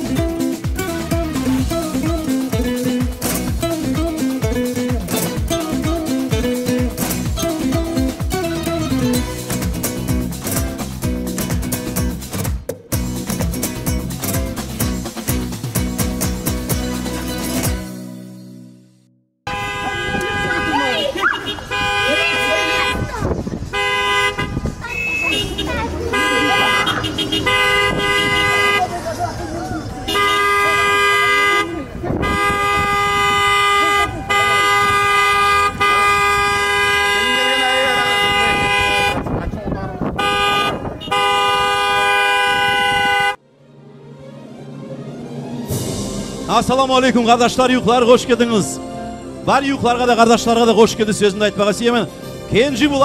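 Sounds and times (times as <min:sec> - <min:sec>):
car horns honking: 0:19.4 - 0:39.4, 0:40.0 - 0:43.4
people's voices: 0:19.8 - 0:23.7, 0:24.6 - 0:35.1, 0:37.0 - 0:41.2.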